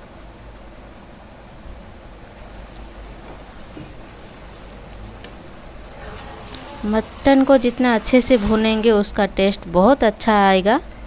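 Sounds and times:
spatula scraping a pan: 0:02.2 - 0:09.0.

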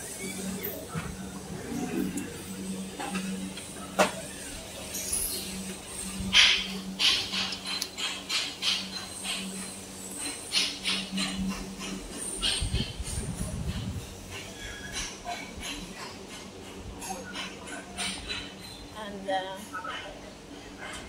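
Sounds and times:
machine hum: 0:00.0 - 0:19.8.

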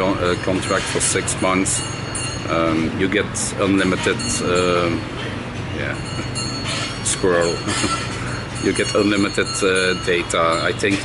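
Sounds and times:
low mechanical hum and rumble: 0:00.0 - 0:11.0.

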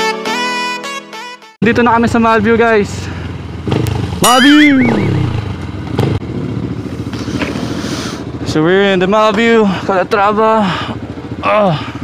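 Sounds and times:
motorcycle engine near idle: 0:01.7 - 0:12.0.

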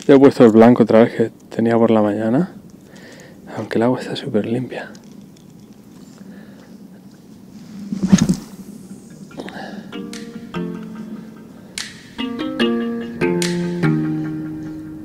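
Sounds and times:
fishing rod cast swish: 0:07.7 - 0:08.9
acoustic guitar music: 0:09.3 - 0:15.0.

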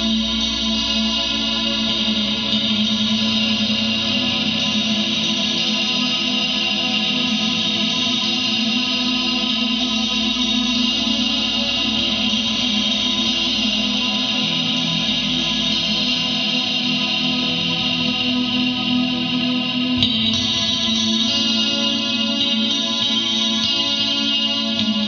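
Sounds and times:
ambient electric guitar notes: 0:00.0 - 0:25.0.

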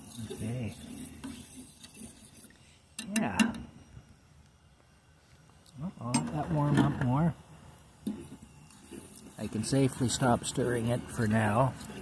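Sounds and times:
spoon stirring in metal saucepan: 0:00.0 - 0:03.1.

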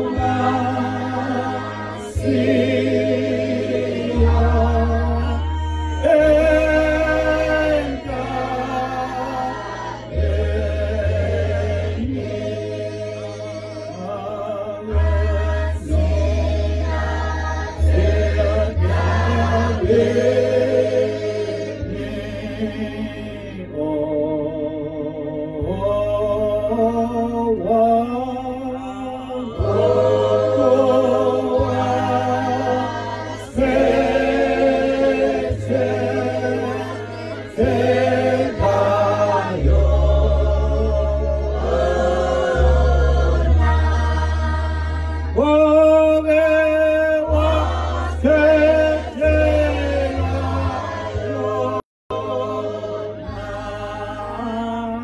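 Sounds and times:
group singing a hymn: 0:00.0 - 0:55.0
held low bass note: 0:00.0 - 0:55.0.

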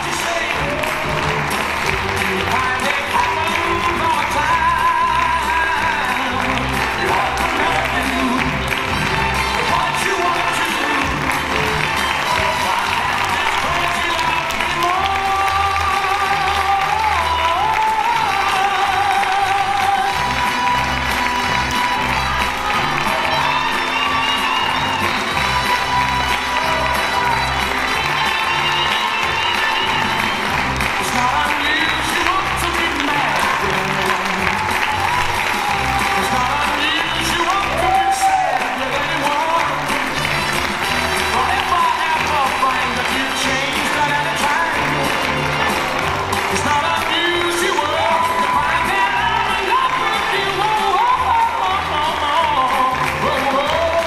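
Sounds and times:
audience applause: 0:00.0 - 0:54.0
music with a steady beat: 0:00.0 - 0:54.0.

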